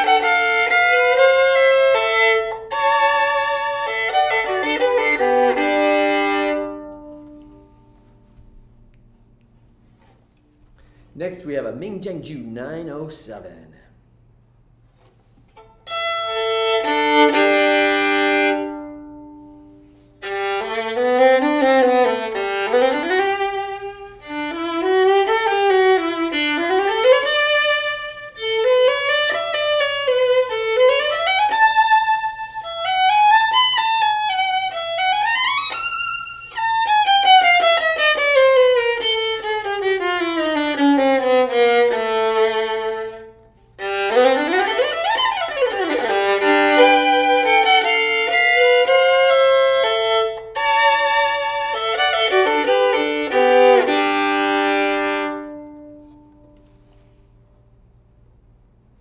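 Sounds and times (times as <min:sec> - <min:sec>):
solo bowed violin: 0:00.0 - 0:08.5, 0:14.8 - 0:57.4.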